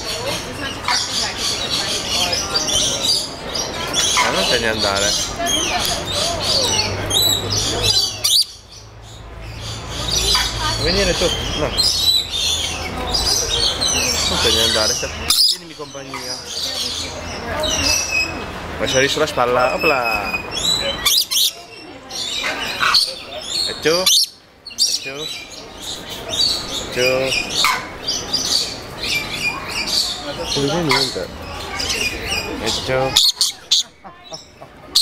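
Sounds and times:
parrots chirping: 0:00.0 - 0:35.0
parrots screeching: 0:00.2 - 0:08.6, 0:19.6 - 0:34.4.

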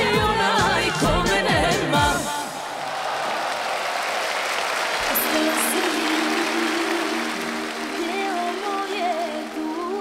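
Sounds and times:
audience applauding: 0:02.5 - 0:10.0.

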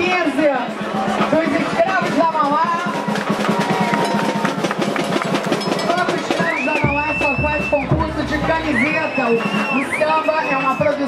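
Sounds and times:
samba percussion: 0:00.0 - 0:11.0.

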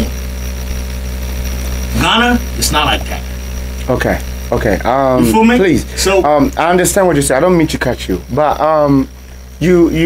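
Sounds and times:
faint high whine: 0:00.0 - 0:10.0
steady low hum: 0:00.0 - 0:10.0.

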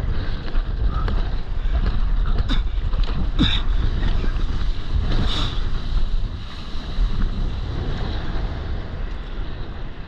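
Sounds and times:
water rushing and splashing: 0:00.0 - 0:10.0
wind rumbling on microphone: 0:00.0 - 0:10.0.

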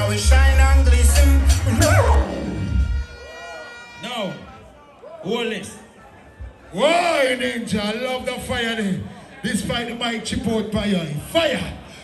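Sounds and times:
dancehall music with heavy bass: 0:00.0 - 0:04.4
high held tone: 0:00.0 - 0:04.6.

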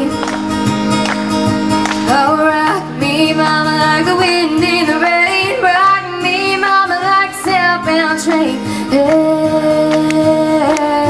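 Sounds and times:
acoustic guitar strumming: 0:00.0 - 0:11.0
woman singing country melody: 0:00.0 - 0:11.0.

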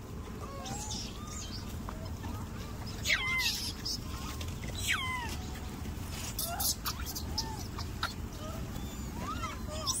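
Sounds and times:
monkeys squealing: 0:00.4 - 0:05.4, 0:06.2 - 0:10.0.

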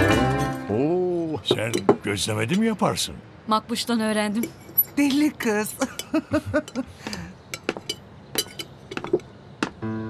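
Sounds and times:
cutlery clinking on plates: 0:05.9 - 0:09.3.

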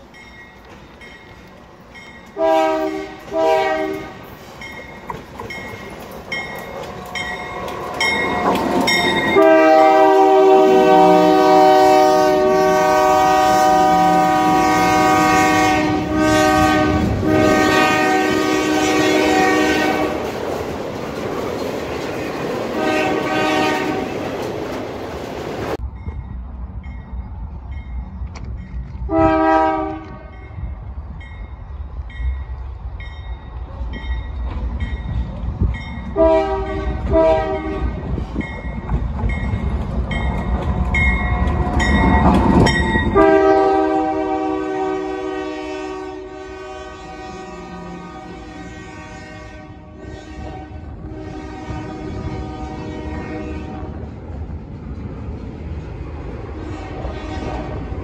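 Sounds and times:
locomotive bell clanging: 0:00.0 - 0:02.9, 0:04.2 - 0:10.2, 0:30.3 - 0:36.3, 0:38.4 - 0:43.7
freight train rumble and wheel clatter: 0:00.0 - 0:58.0
locomotive air horn blasts: 0:02.4 - 0:04.4, 0:08.9 - 0:20.3, 0:22.8 - 0:24.2, 0:29.1 - 0:30.5, 0:36.1 - 0:38.1, 0:43.0 - 0:54.0, 0:56.6 - 0:58.0.

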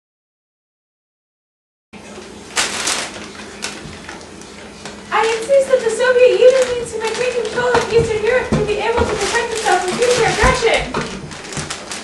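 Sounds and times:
paper bags rustling: 0:02.0 - 0:12.0.

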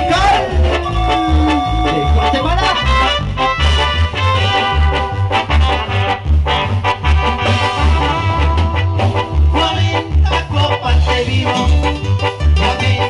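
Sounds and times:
latin dance music over loudspeakers: 0:00.0 - 0:13.0.

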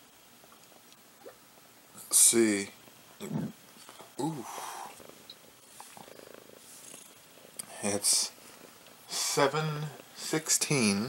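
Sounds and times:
cat purring: 0:03.2 - 0:03.6, 0:04.6 - 0:08.8.

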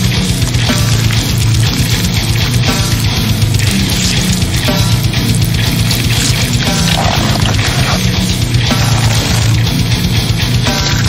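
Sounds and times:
distorted guitar: 0:00.0 - 0:11.0.

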